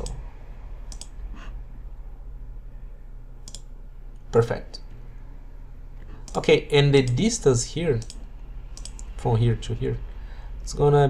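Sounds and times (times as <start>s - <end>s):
low steady hum: 0.0s - 11.0s
computer mouse clicks: 0.9s - 1.2s, 3.4s - 3.7s, 6.0s - 7.3s, 7.9s - 9.2s.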